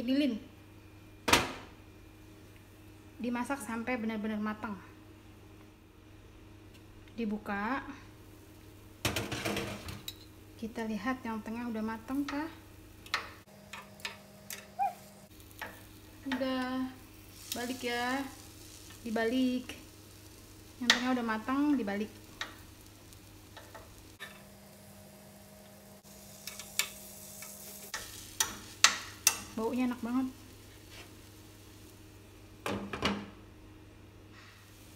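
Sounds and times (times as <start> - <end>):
faint steady hum: 0.0 - 34.9
faint batter sizzling: 10.6 - 32.9
metal spoon clicking and scraping pan: 28.0 - 29.5.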